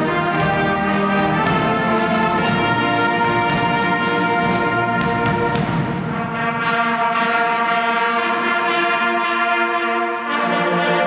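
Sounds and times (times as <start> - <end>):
wind band sustained chords: 0.0 - 11.0.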